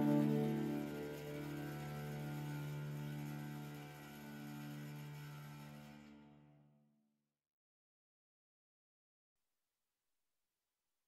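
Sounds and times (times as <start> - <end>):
harp chord ringing: 0.0 - 2.2.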